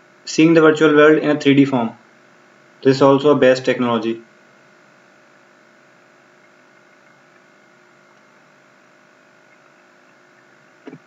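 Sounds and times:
faint electrical hum with hiss: 0.0 - 11.0.

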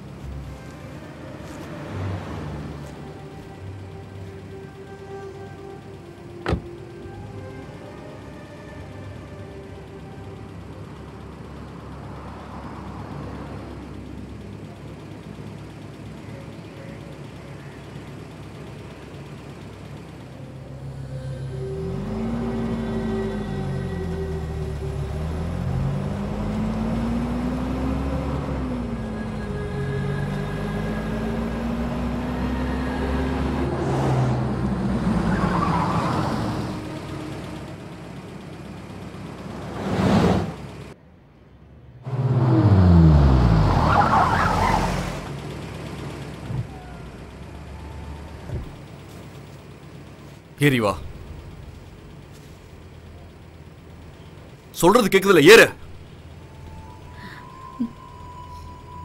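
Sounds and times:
vehicle engine revving: 0.0 - 5.4, 6.0 - 41.0, 41.9 - 54.7.

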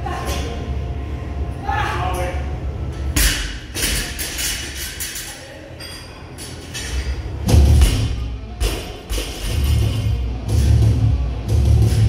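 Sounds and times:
bass-heavy music: 7.4 - 12.0.

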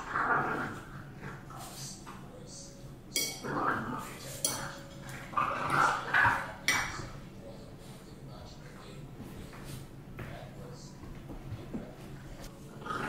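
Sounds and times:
metal fork clinking against bowl: 3.1 - 3.6, 4.3 - 5.9.

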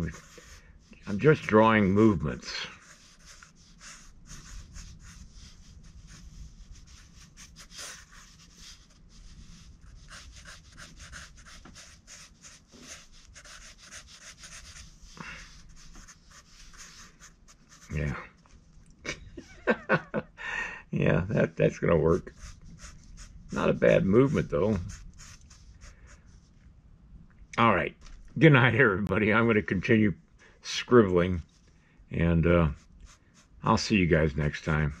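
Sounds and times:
marker scribbling on paper: 0.0 - 18.2, 22.1 - 26.4, 32.7 - 33.5
short breath: 15.1 - 15.6, 20.4 - 20.9.

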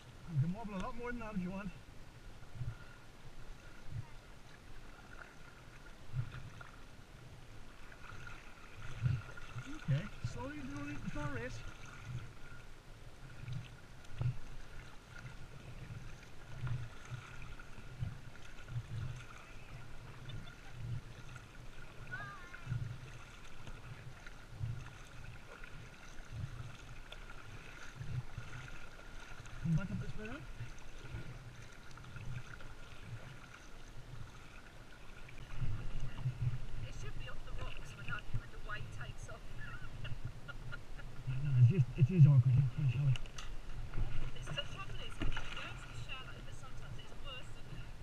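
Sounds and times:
kayak paddle strokes: 0.0 - 48.0
water lapping against hull: 0.0 - 48.0.

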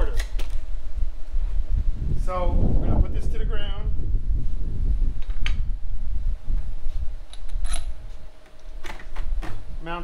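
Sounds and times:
low rumble: 0.6 - 8.8.

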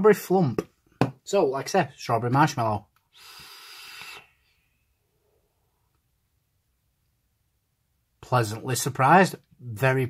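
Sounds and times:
airy hiss of vape inhale: 3.1 - 4.6.

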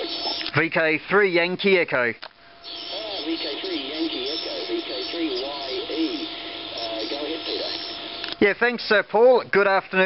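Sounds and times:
thin radio speech through speaker: 0.0 - 9.1
radio band hiss: 0.0 - 10.0
faint steady tone: 2.3 - 8.8.

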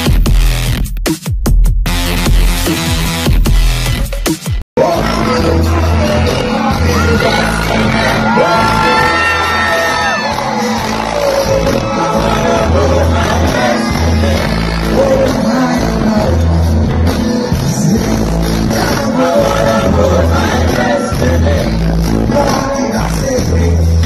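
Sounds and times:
live reggae music: 0.0 - 24.0
person singing: 4.8 - 23.9
deep repeating bass line: 4.8 - 24.0
crowd shouting and whooping: 5.7 - 15.2.

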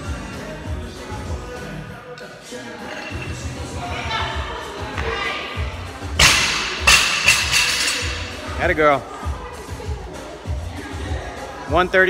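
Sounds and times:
gym music: 0.0 - 12.0.

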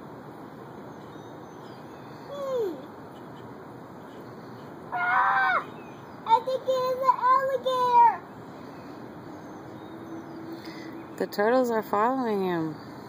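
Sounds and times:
outdoor background hiss: 0.0 - 13.0
child calling out: 2.3 - 2.9, 4.9 - 5.7, 6.3 - 8.2.

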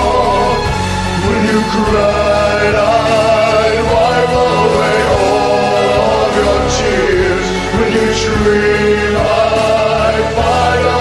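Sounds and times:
layered male voice singing harmony: 0.0 - 11.0
orchestral backing with violin: 0.0 - 11.0.

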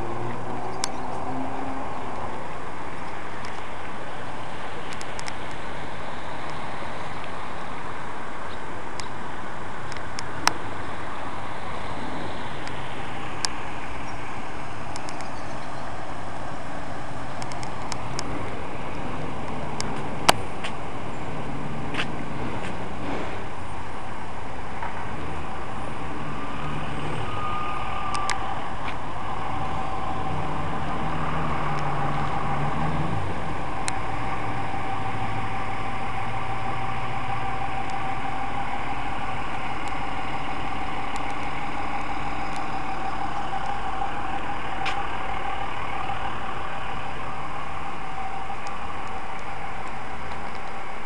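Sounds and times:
car engine driving slowly: 0.0 - 51.0
steady high hum: 0.0 - 51.0.

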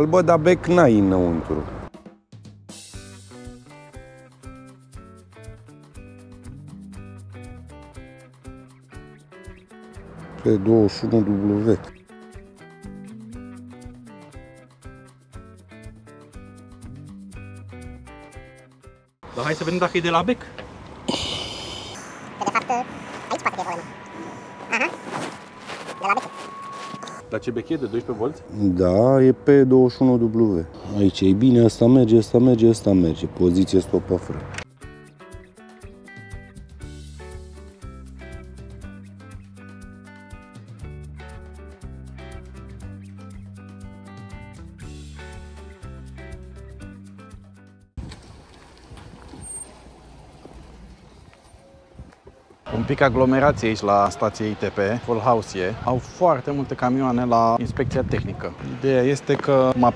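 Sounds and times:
truck engines rumbling: 0.0 - 1.9, 9.8 - 11.9, 19.2 - 34.6, 48.0 - 59.9.

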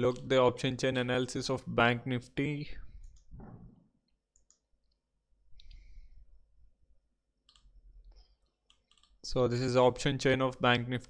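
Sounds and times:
computer mouse clicks: 3.0 - 3.4, 4.3 - 5.0, 7.4 - 9.2.

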